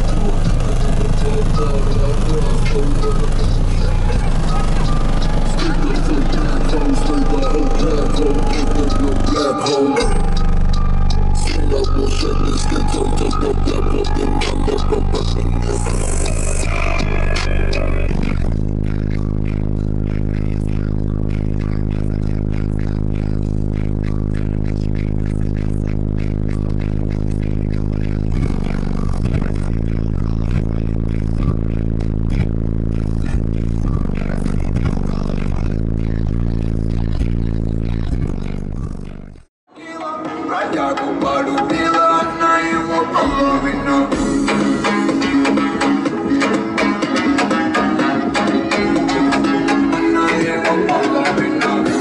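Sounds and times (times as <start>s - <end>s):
bass-heavy music from subwoofers: 0.0s - 52.0s.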